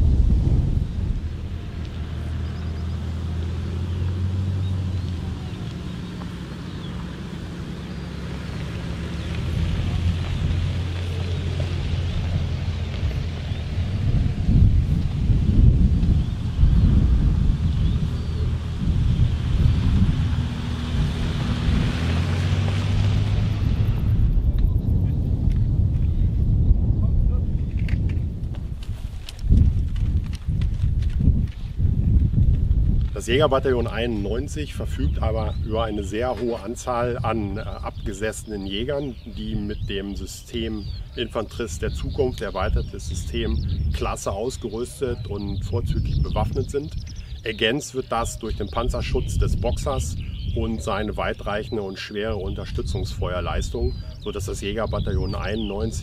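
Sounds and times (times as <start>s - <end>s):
off-road vehicles driving past: 0.1s - 26.2s, 32.9s - 56.0s
low thumps: 8.5s - 33.2s.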